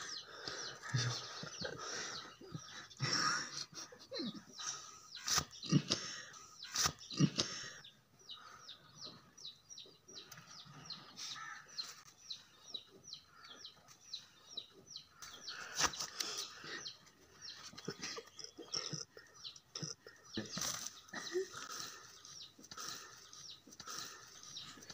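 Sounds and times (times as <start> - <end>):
bird chirping: 0.0 - 24.9.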